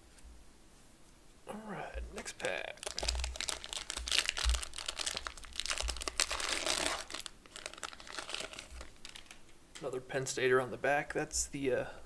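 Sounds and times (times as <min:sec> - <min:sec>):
plastic wrapper crinkling: 0:02.2 - 0:09.9.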